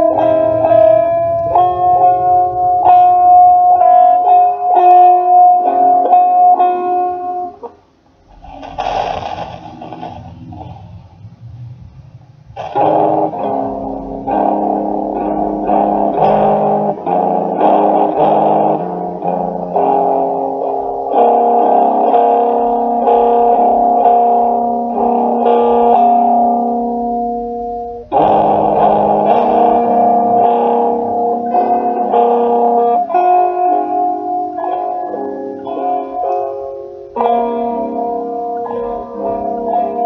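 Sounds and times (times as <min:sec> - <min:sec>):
plucked guitar chords: 0:00.0 - 0:07.8, 0:12.6 - 0:40.0.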